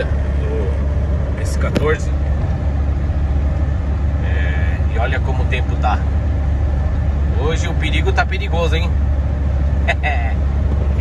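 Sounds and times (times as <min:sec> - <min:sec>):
car road and engine drone: 0:00.0 - 0:11.0.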